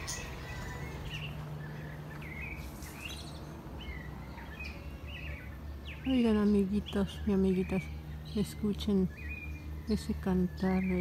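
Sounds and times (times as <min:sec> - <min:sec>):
bird chirping: 0:00.0 - 0:11.0
low background hum: 0:00.0 - 0:11.0.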